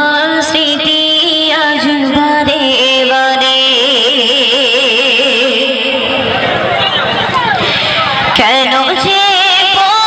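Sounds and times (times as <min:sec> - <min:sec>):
woman singing with vibrato: 0:00.0 - 0:06.4, 0:07.7 - 0:10.0.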